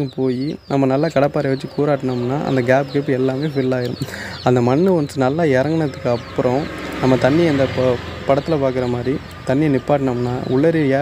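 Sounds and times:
man narrating: 0.0s - 11.0s.

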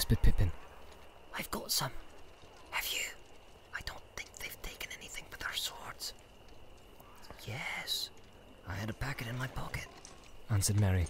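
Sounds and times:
man whispering: 2.8s - 6.1s, 7.3s - 11.0s.

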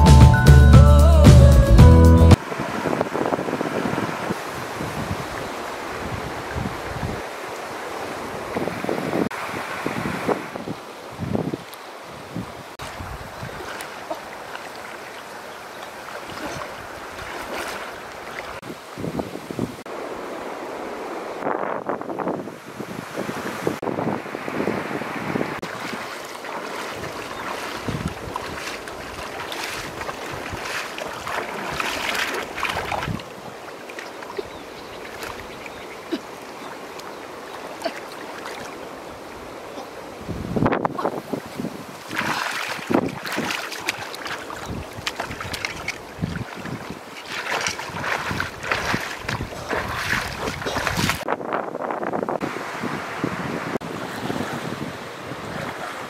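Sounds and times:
water rushing: 2.3s - 51.3s
legs splashing through water: 12.8s - 18.6s, 25.6s - 40.0s, 41.1s - 51.3s.

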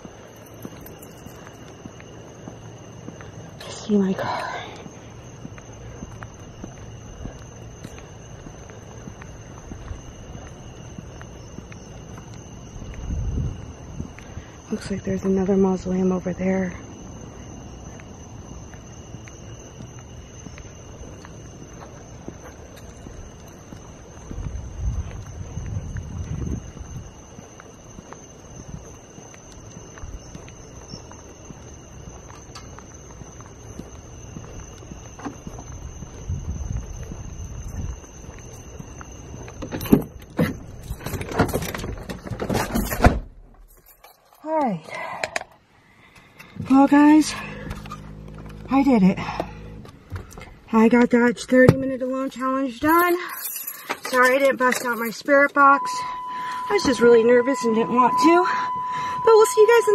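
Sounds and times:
footsteps outdoors: 0.0s - 59.9s
high-pitched two-tone drone: 55.6s - 59.9s.

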